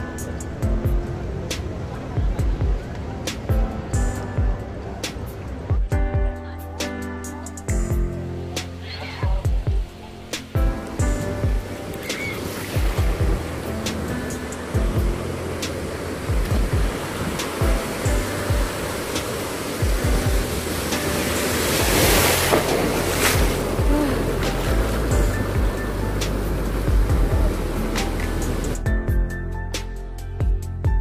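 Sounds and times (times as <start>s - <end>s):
background music with low beat: 0.0s - 31.0s
ocean surf breaking: 10.2s - 28.8s.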